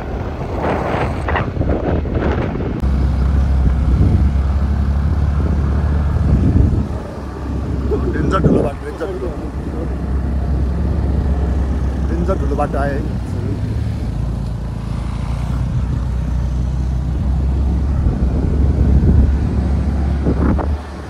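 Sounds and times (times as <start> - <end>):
road noise: 0.0 - 21.0
wind rumble on microphone: 0.0 - 21.0.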